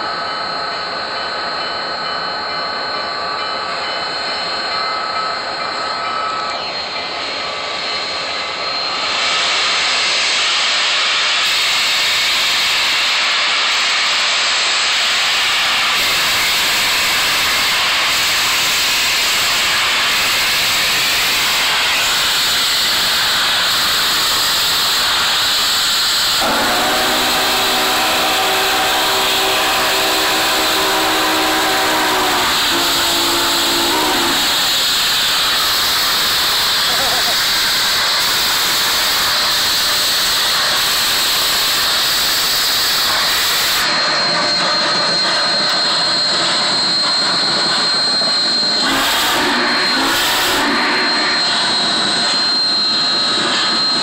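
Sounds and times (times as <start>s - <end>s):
chime whistle: 0.2s - 9.1s, 41.1s - 54.0s
steam locomotive hissing: 1.8s - 54.0s.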